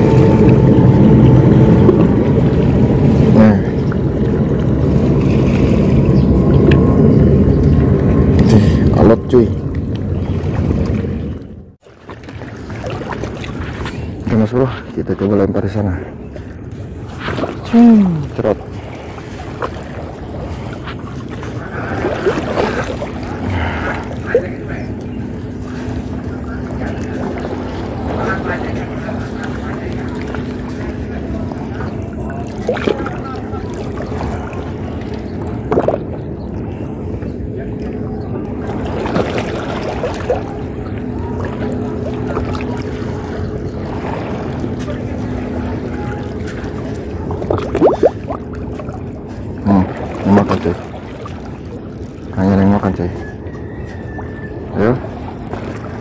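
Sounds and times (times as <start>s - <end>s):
wind buffeting microphone: 0.0s - 11.7s
wind rumble: 0.0s - 50.3s
sea water washing: 0.0s - 56.0s.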